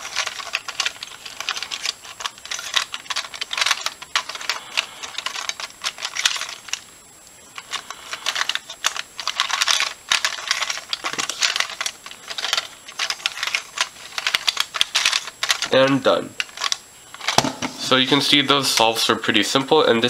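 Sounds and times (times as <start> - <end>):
plastic puzzle clicking and clattering: 0.0 - 6.8, 7.6 - 17.9.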